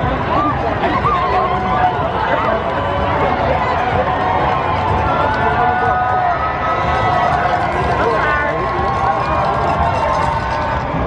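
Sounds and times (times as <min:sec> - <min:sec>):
crowd voices calling out: 0:00.0 - 0:11.0.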